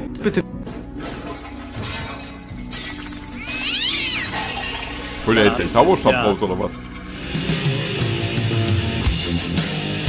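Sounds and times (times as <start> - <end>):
background music drone: 0.0 - 10.0
high wavering cry: 3.3 - 4.6.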